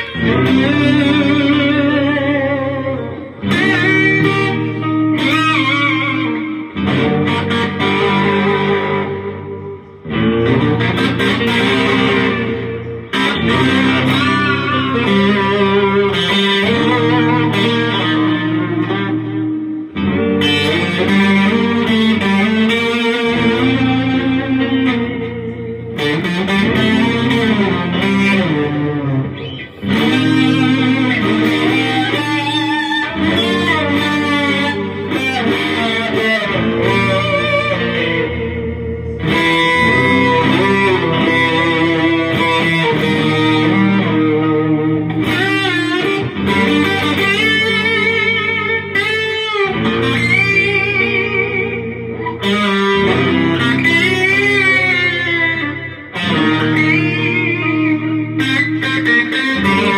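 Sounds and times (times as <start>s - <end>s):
electric guitar lead lines: 0.0s - 59.9s
looped electric guitar riff: 0.0s - 59.9s.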